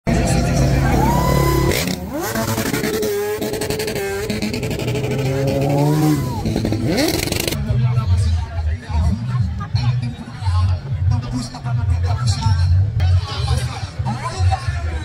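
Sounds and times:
motorcycle engines revving: 0.1s - 8.2s.

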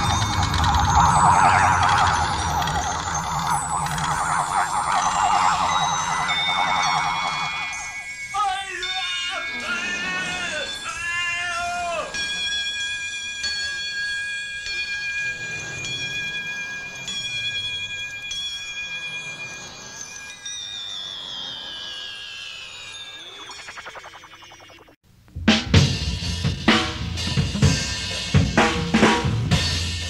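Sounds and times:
experimental music gliding tones: 0.0s - 25.0s.

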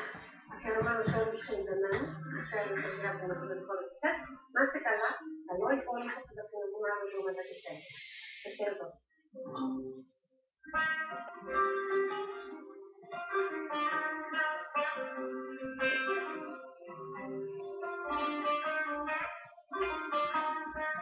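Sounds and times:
plucked string music on television: 0.0s - 21.0s.

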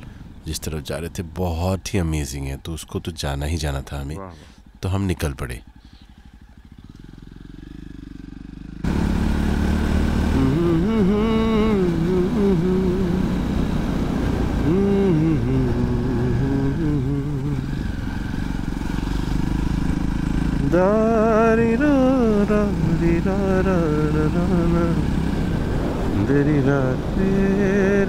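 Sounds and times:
moving motorcycle: 0.0s - 28.0s
wind: 0.0s - 28.0s
man singing slow melody: 10.2s - 13.4s, 14.6s - 17.7s, 20.6s - 25.2s, 26.0s - 28.0s.

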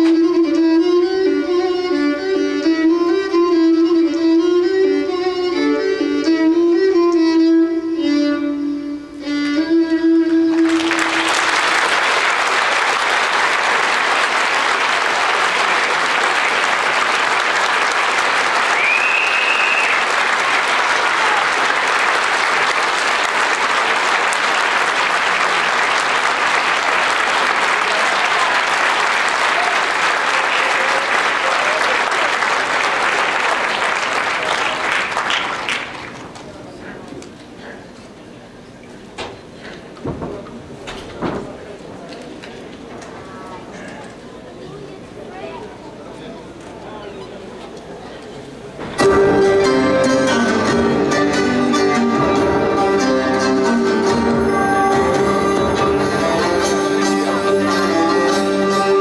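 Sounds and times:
audience applauding: 10.4s - 36.8s.

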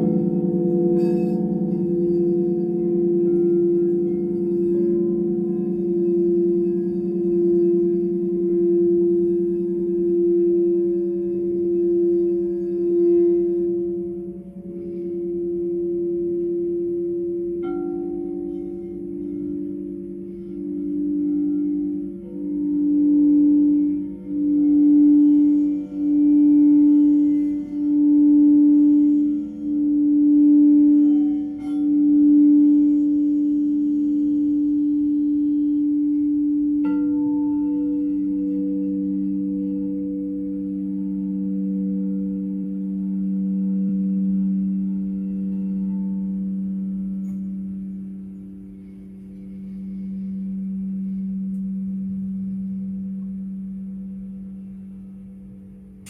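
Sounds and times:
crystal singing bowl ringing: 0.0s - 56.0s
lower singing bowl struck: 0.0s - 56.0s.

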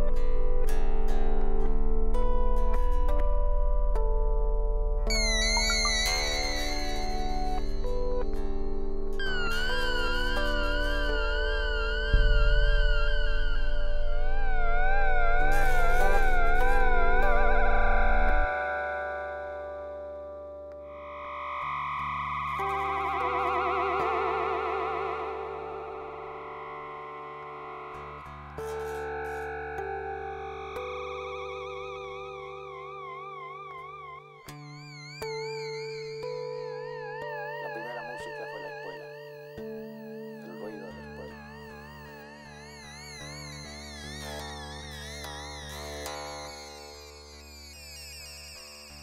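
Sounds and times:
synthesizer notes with vibrato: 3.0s - 47.2s.

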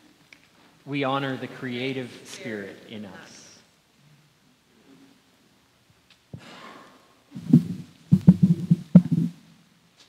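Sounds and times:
microphone stand handling thumps: 7.4s - 9.4s.

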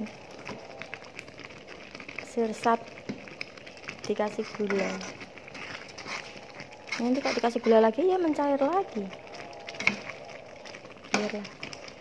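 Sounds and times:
metal spoon stirring jam in pan: 0.4s - 12.0s.

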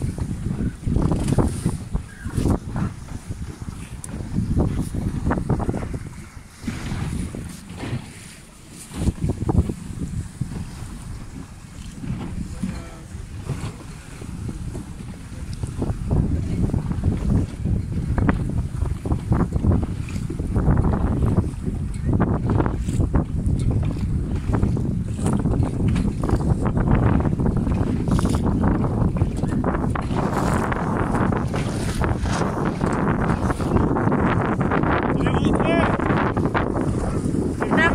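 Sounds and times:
choppy water splashing: 0.0s - 37.9s
wind buffeting microphone: 0.0s - 37.9s.

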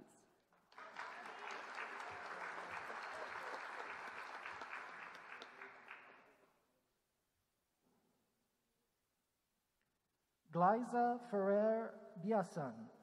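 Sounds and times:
audience applauding: 0.6s - 6.4s.

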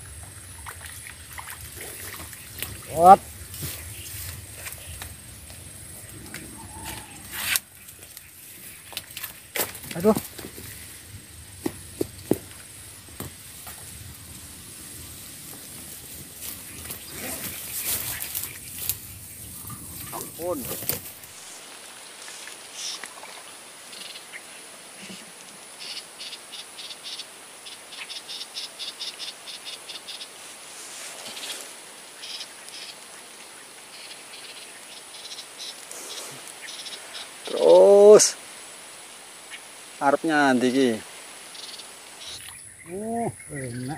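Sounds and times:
rustling: 1.7s - 23.5s, 30.4s - 31.8s.

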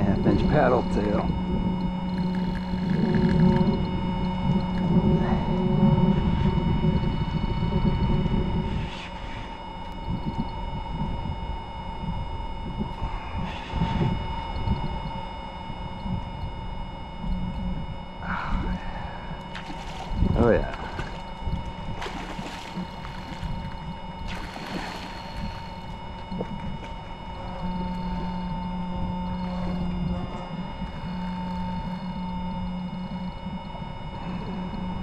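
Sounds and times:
loud low rumble: 0.0s - 11.3s
steady mechanical hum: 0.0s - 35.0s.

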